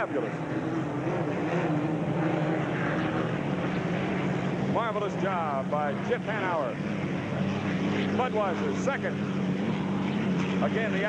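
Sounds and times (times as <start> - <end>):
racing boat engine droning: 0.0 - 11.0.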